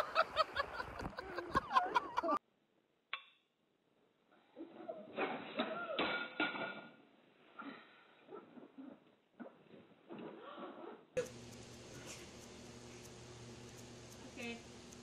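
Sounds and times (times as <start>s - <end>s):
steady hum: 11.2s - 15.0s.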